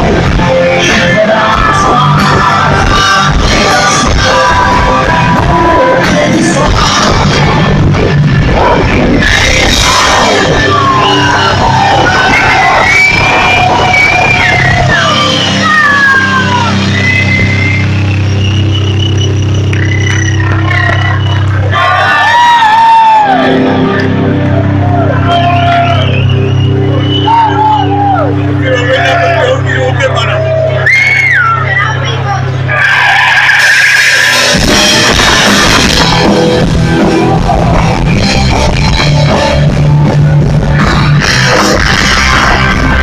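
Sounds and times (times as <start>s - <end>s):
punk rock band playing: 0.0s - 43.0s.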